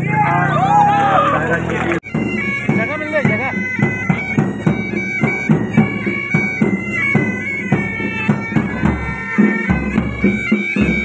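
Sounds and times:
people shouting: 0:00.0 - 0:01.7.

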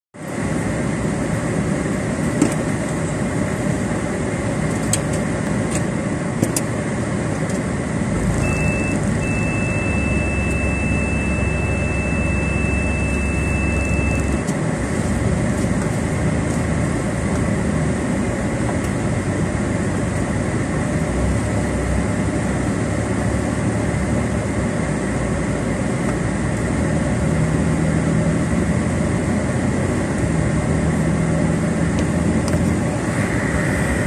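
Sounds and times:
car cabin noise: 0:00.3 - 0:20.9
deep hum: 0:08.0 - 0:20.2
steady high tone: 0:08.2 - 0:14.5, 0:33.0 - 0:34.0.

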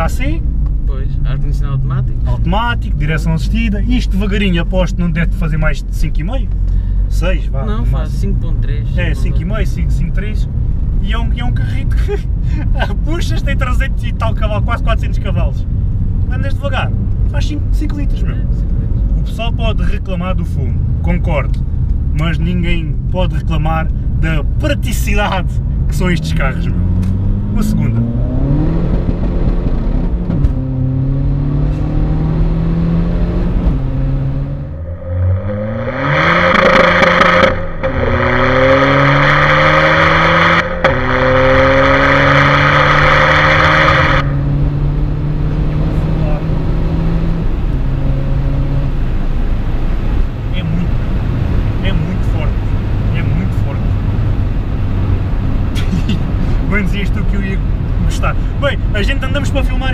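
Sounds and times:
car engine accelerating: 0:00.0 - 0:59.9
rushing of exhaust and wind: 0:00.0 - 0:59.9.

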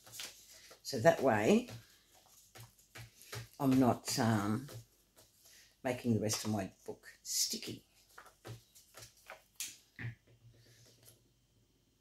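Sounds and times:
paper rustling: 0:00.0 - 0:06.5, 0:07.9 - 0:09.8.

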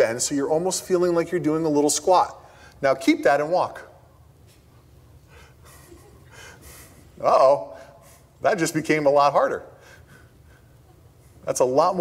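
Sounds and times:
low room hum: 0:00.0 - 0:12.0
man breathing: 0:02.4 - 0:02.8, 0:05.2 - 0:07.2, 0:07.8 - 0:08.4, 0:09.7 - 0:11.4.

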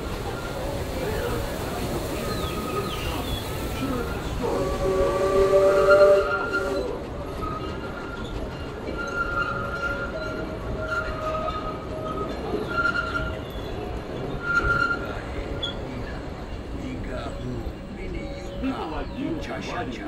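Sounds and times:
wheels squealing: 0:00.0 - 0:19.2
steam train rumble: 0:00.0 - 0:20.0
train whistle blast: 0:04.4 - 0:07.0.

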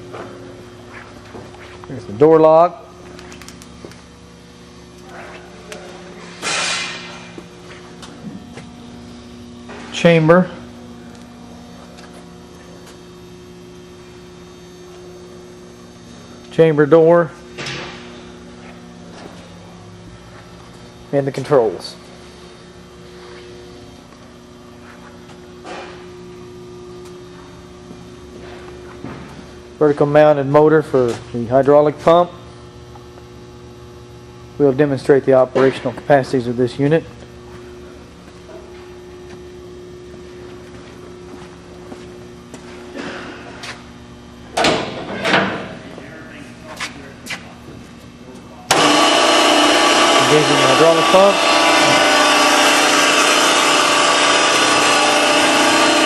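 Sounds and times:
machine hum: 0:00.0 - 0:56.0
electric motor and hydraulic pump: 0:03.0 - 0:13.1, 0:48.6 - 0:56.0.

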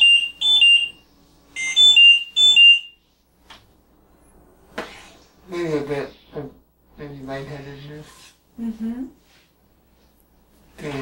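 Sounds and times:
two-note alarm beeps: 0:01.6 - 0:03.0.

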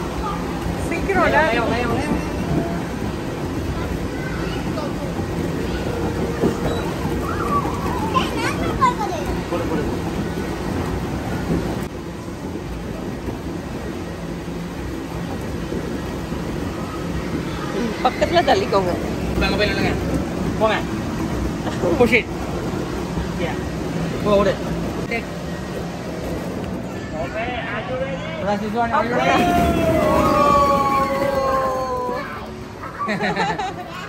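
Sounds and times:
indoor play area din: 0:00.0 - 0:34.0
children calling out: 0:03.8 - 0:09.3, 0:29.2 - 0:34.0.

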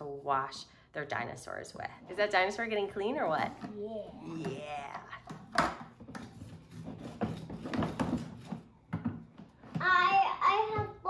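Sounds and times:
child's voice: 0:03.7 - 0:04.4, 0:09.8 - 0:11.0.

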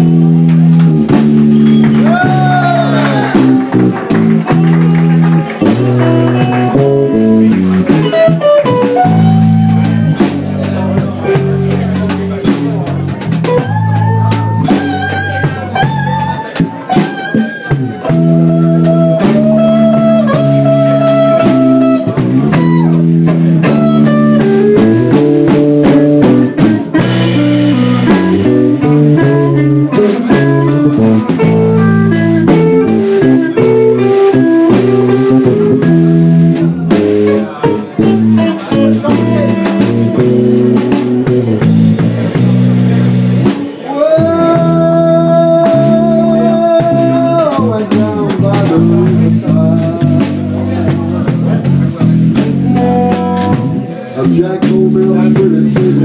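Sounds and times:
drums: 0:00.0 - 0:56.0
electric guitar lead lines: 0:00.0 - 0:56.0
walking electric bass: 0:00.0 - 0:56.0.

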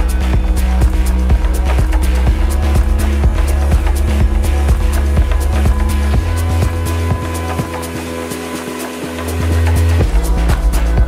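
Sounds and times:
melodic techno music: 0:00.0 - 0:11.0.

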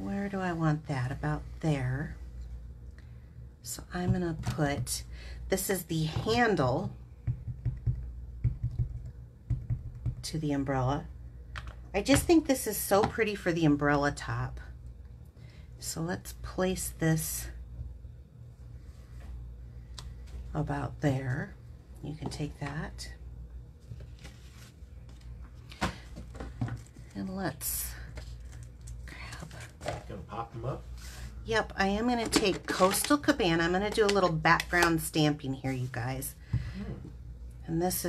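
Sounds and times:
steady low hum: 0:00.0 - 0:38.0
paper and supplies shifting: 0:23.9 - 0:25.3.

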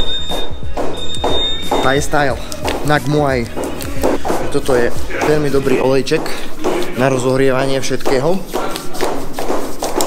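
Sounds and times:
high-pitched tone: 0:00.0 - 0:02.6
background music with bass: 0:00.0 - 0:09.3
man talking: 0:00.3 - 0:09.0.

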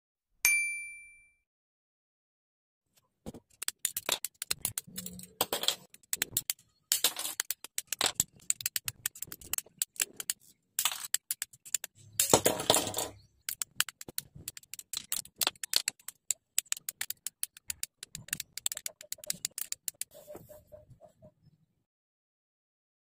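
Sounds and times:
plastic clattering: 0:03.3 - 0:20.1
nippers snipping plastic parts: 0:03.5 - 0:12.4, 0:13.4 - 0:20.1.

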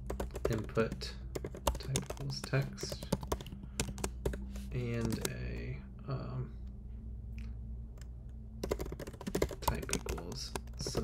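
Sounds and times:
typing on computer keyboard: 0:00.0 - 0:05.3, 0:08.6 - 0:11.0.

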